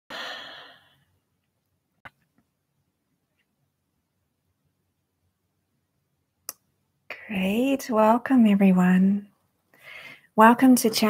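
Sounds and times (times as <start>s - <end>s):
woman sighing: 0.1s - 0.9s.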